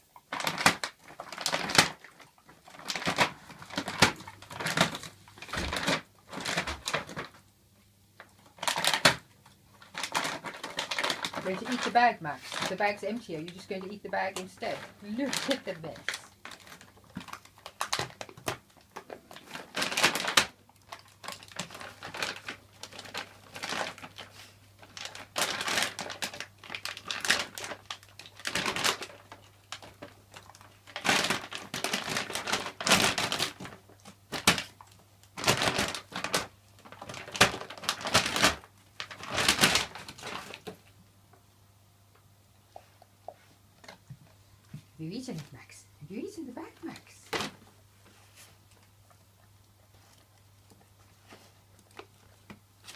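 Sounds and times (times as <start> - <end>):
dog ripping crinkly packaging: 0.1 - 7.4, 8.3 - 41.0, 43.8 - 52.9.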